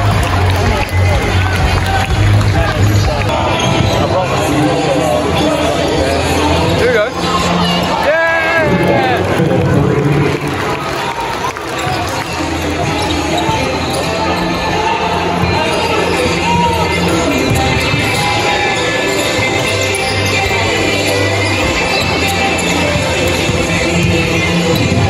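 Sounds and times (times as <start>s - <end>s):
music over arena speakers: 0.0s - 25.0s
people talking in a large hall: 0.0s - 25.0s.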